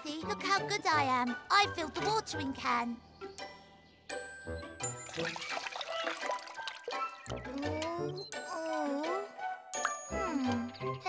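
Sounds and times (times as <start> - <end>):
light background music: 0.0 - 11.0
water trickling onto soil: 5.1 - 7.4.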